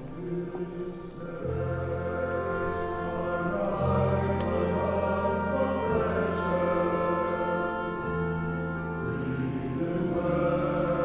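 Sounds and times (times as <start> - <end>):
choir singing: 0.0 - 11.0
deep bass notes: 0.0 - 11.0
symphony orchestra playing: 0.0 - 11.0.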